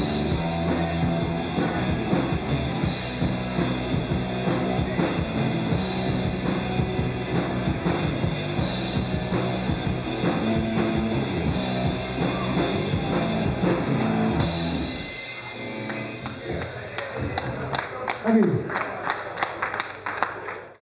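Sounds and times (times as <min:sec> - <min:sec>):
live rock band playing: 0:00.0 - 0:16.8
scattered clapping: 0:15.8 - 0:20.8.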